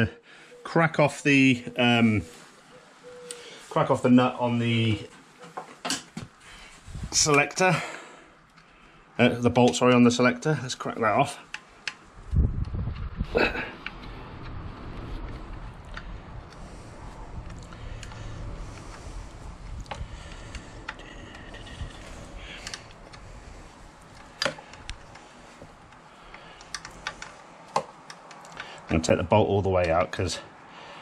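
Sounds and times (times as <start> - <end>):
short laugh: 13.2 - 13.8.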